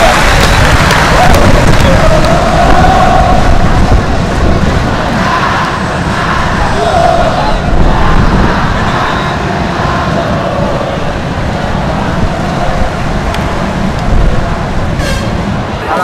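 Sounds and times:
stadium crowd din: 0:00.0 - 0:16.0.

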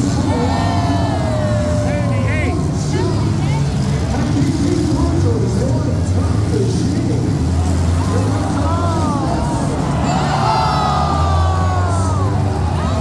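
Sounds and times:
car engines roaring: 0:00.0 - 0:13.0
crowd voices and shouts: 0:00.0 - 0:13.0.

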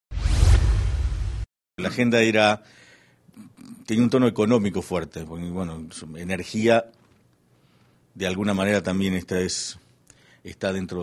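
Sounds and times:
whoosh with deep bass: 0:00.1 - 0:01.5
man talking: 0:01.8 - 0:02.6, 0:03.4 - 0:07.0, 0:08.2 - 0:09.8, 0:10.5 - 0:11.0.

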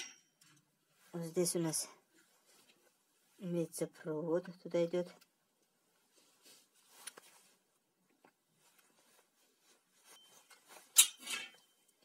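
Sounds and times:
pliers clicking and rustling on wiring: 0:10.5 - 0:12.0.

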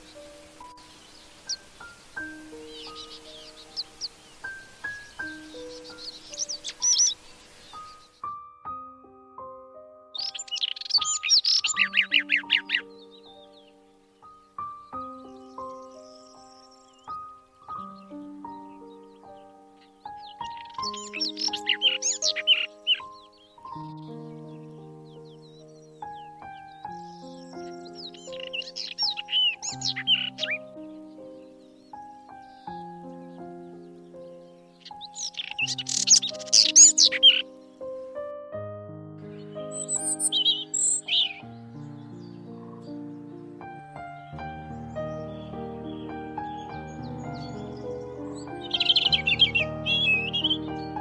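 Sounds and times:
robin singing: 0:00.0 - 0:08.9, 0:10.1 - 0:38.3, 0:39.2 - 0:51.0
soft background music: 0:00.0 - 0:51.0.

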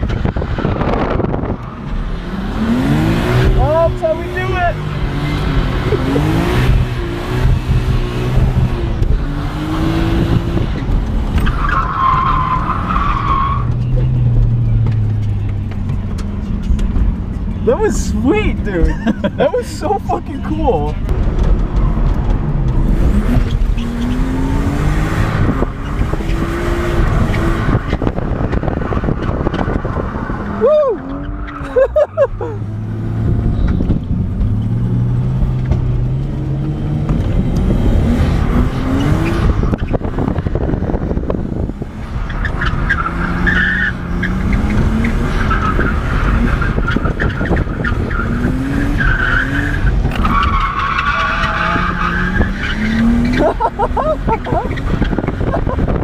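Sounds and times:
car engine revving: 0:00.0 - 0:56.0
tyres squealing: 0:45.4 - 0:54.9.

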